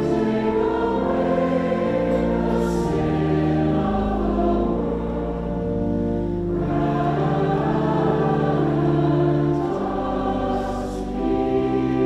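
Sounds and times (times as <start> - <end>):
choir and congregation singing: 0.0 - 12.0
organ chords: 0.0 - 12.0.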